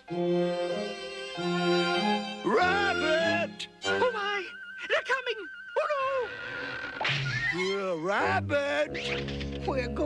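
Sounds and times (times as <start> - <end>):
orchestral background music: 0.0 - 6.0, 7.7 - 10.0.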